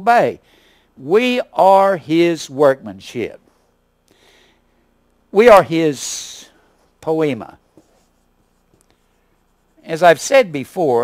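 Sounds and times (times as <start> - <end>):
man speaking: 0.0 - 0.4, 1.0 - 3.4, 5.3 - 7.6, 9.8 - 11.0
marker scratching on whiteboard: 7.6 - 10.3.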